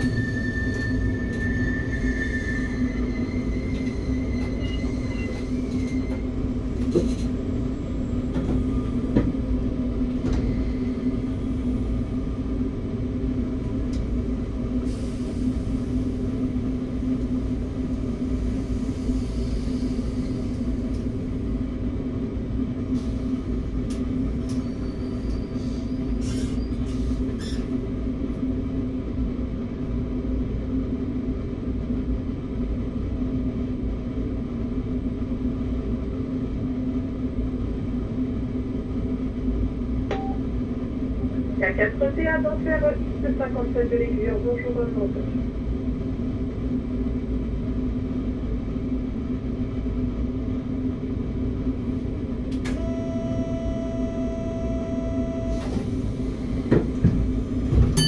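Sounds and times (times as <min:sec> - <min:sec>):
train low hum: 0:00.0 - 0:58.0.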